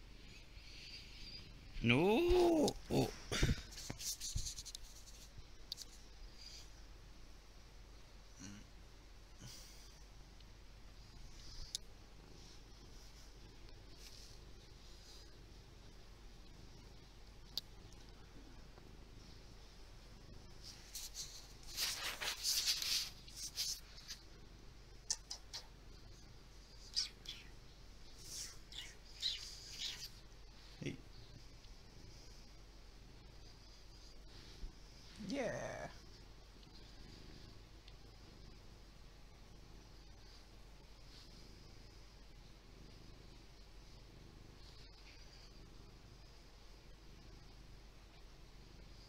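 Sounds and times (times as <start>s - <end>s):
cat purring: 0.0s - 49.0s.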